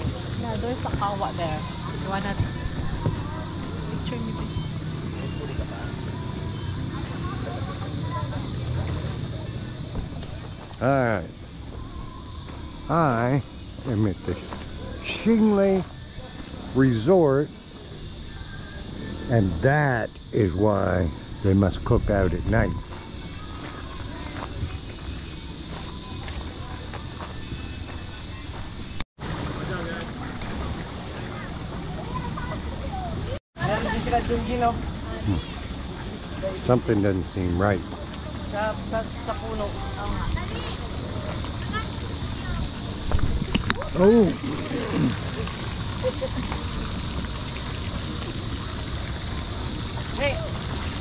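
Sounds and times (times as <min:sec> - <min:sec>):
faint voices: 0:00.0 - 0:51.0
insect drone: 0:00.0 - 0:51.0
footsteps on gravel: 0:22.8 - 0:28.8.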